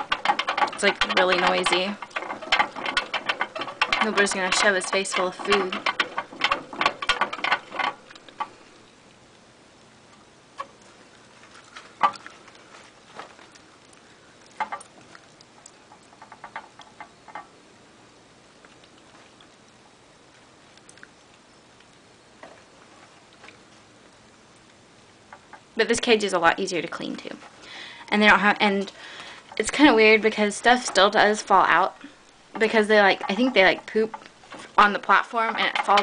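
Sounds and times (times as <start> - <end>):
hamsters clicking and tapping: 0.0 - 8.9, 10.6 - 17.5, 25.3 - 36.0.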